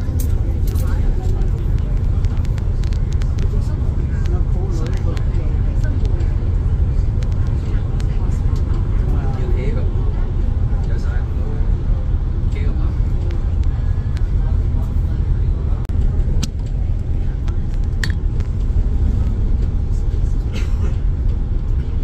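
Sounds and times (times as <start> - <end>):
bus engine and road rumble: 0.0 - 22.0.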